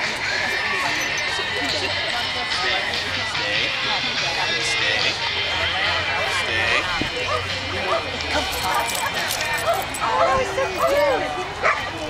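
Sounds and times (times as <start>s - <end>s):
people talking: 0.0s - 12.0s
dogs yipping and barking: 7.2s - 11.9s.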